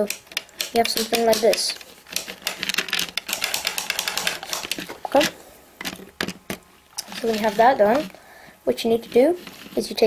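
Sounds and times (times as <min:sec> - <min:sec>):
plastic bricks clicking and rattling: 0:00.0 - 0:08.1.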